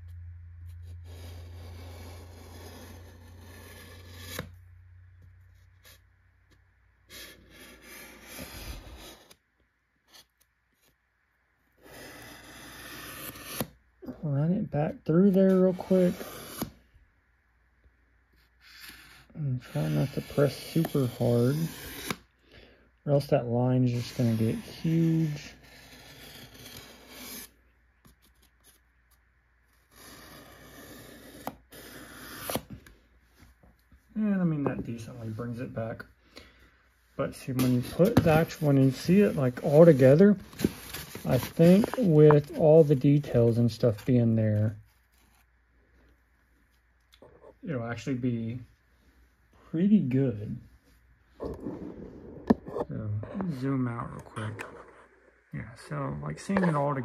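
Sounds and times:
pencil scraping along foam board: 0:00.7 - 0:04.6, 0:05.5 - 0:09.4, 0:11.7 - 0:13.8, 0:15.1 - 0:16.8, 0:18.3 - 0:22.3, 0:23.8 - 0:28.8, 0:29.7 - 0:32.7.

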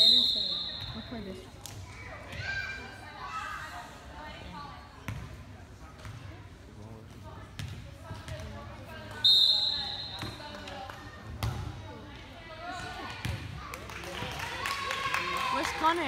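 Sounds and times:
referee's whistle: 0:00.0 - 0:01.1, 0:09.2 - 0:10.4
background chatter: 0:00.0 - 0:16.0.

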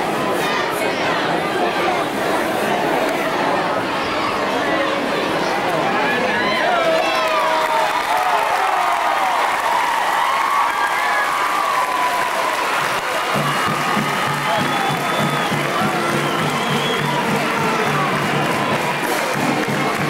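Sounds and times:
crowd cheering and applauding: 0:06.4 - 0:20.0
people shouting: 0:11.2 - 0:20.0.

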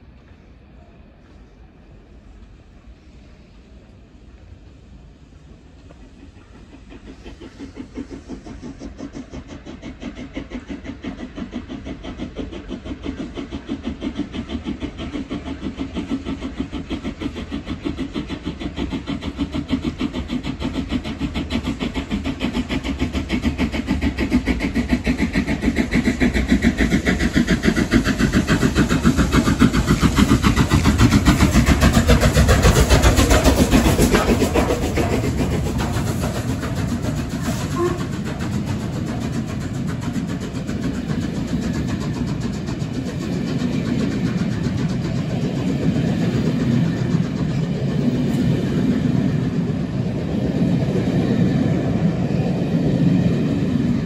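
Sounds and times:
rumble of train coaches: 0:00.0 - 0:54.0
steam locomotive exhaust beats: 0:00.0 - 0:54.0.

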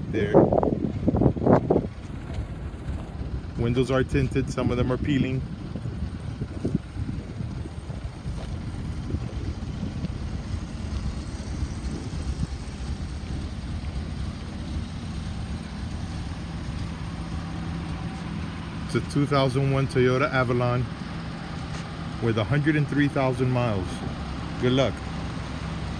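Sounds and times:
car engine idling unevenly: 0:00.0 - 0:25.9.

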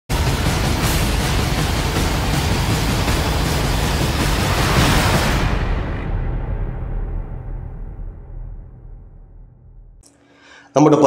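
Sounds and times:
whoosh and rumble effect: 0:00.1 - 0:10.0.

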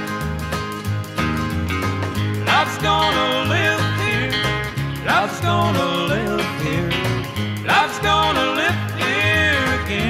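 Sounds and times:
guitar: 0:00.0 - 0:10.0
sliding lead guitar line: 0:00.0 - 0:10.0
steady bass line: 0:00.0 - 0:10.0.

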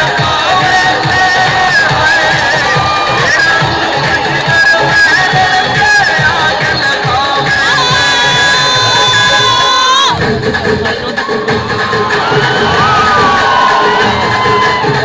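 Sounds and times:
audience cheering and shouting: 0:00.0 - 0:15.0
loud dance music: 0:00.0 - 0:15.0.

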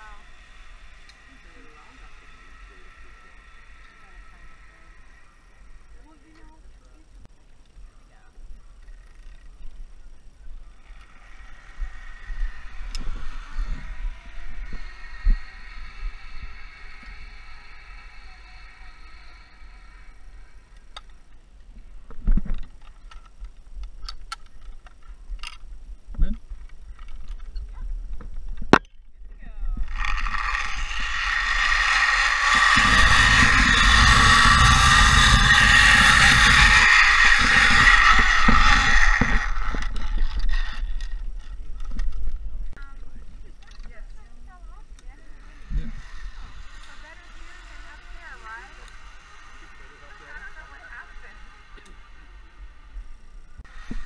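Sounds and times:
zipline pulleys whirring on cable: 0:00.0 - 0:54.0.

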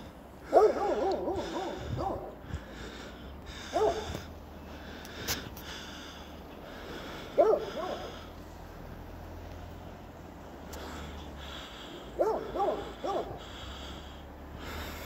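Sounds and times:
distant animal calling: 0:00.0 - 0:09.2, 0:10.8 - 0:15.0.

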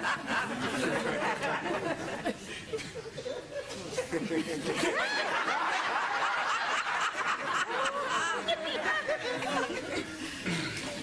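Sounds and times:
people laughing: 0:00.0 - 0:11.0.

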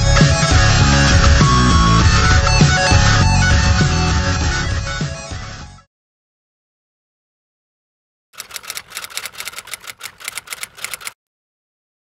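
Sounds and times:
keystroke clicks: 0:08.4 - 0:11.2.

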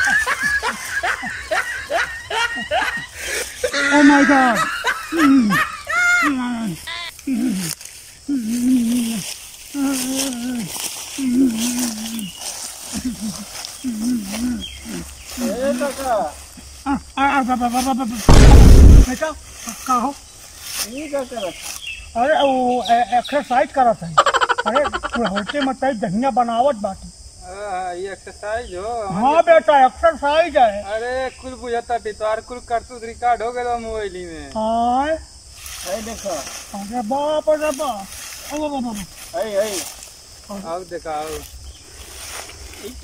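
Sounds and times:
rustling in dry leaves: 0:00.0 - 0:04.7, 0:06.0 - 0:22.1, 0:35.5 - 0:43.0
steady high-pitched hiss: 0:00.0 - 0:43.0.

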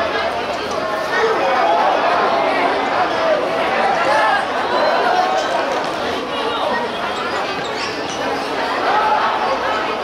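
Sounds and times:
people shouting and chattering: 0:00.0 - 0:10.0.

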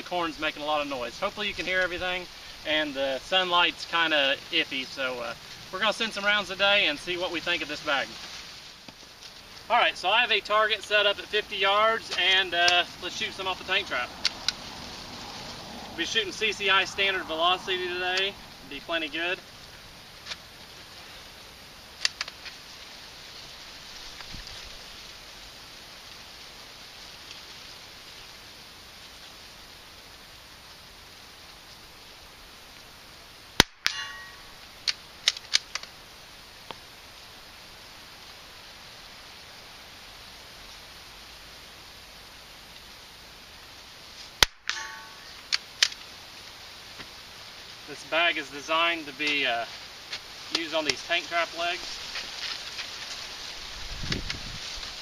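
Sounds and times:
wind rustling dry corn stalks: 0:00.0 - 0:55.0
rifle action clicks: 0:34.8 - 0:35.9.

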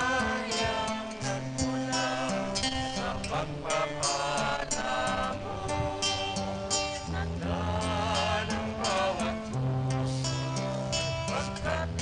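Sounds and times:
person singing a hymn: 0:00.0 - 0:12.0.

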